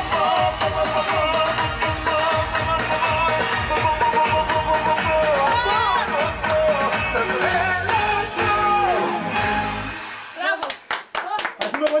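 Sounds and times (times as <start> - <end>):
people clapping: 0.0 - 8.3, 10.4 - 12.0.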